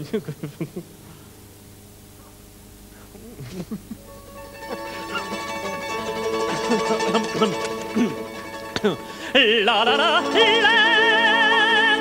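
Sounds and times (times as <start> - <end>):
mandolin plucked notes: 4.0 - 12.0.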